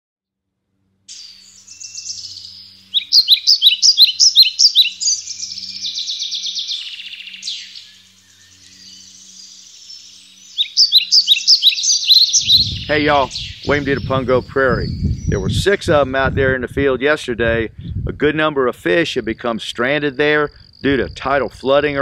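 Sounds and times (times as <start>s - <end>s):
eagle high chirping calls: 1.1s - 15.6s.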